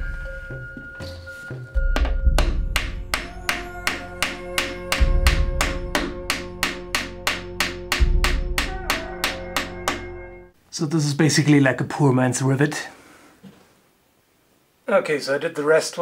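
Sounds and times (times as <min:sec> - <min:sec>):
background music: 0:00.0 - 0:10.6
hammer striking nails: 0:02.0 - 0:10.2.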